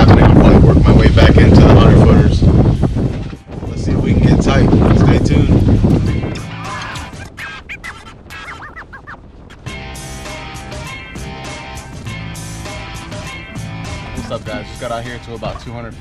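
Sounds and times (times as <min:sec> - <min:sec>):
boat noise: 0:00.0 - 0:16.0
wind on microphone: 0:00.0 - 0:16.0
upbeat guitar music: 0:03.0 - 0:07.4, 0:09.5 - 0:16.0.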